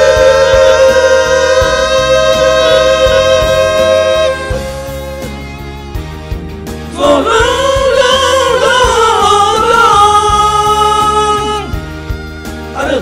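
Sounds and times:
singers holding long note: 0.0s - 5.2s, 6.9s - 11.8s
pop backing track with drum beat: 0.0s - 13.0s.

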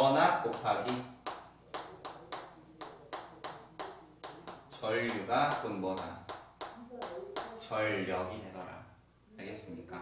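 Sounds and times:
chalk tapping on chalkboard: 0.0s - 7.7s.

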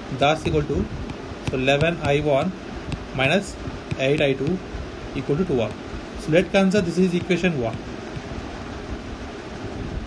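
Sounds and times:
room and microphone hiss: 0.0s - 10.0s.

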